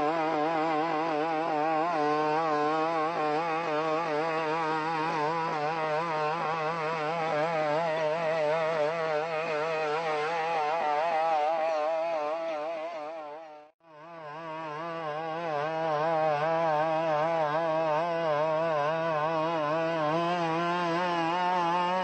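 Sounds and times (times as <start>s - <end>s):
two-stroke engine buzzing: 0.0s - 22.0s.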